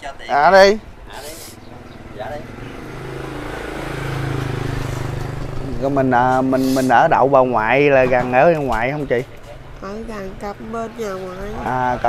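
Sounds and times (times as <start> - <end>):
motorbike engine passing: 0.6 - 12.0.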